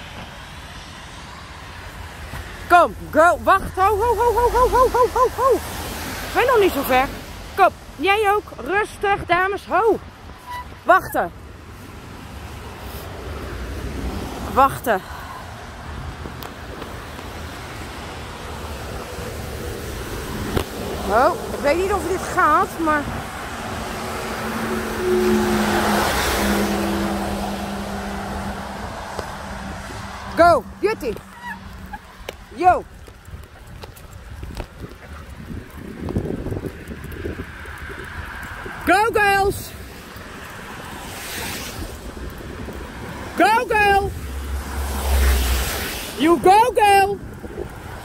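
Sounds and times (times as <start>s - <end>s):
low traffic rumble: 0.0s - 48.0s
wind on microphone: 31.7s - 48.0s.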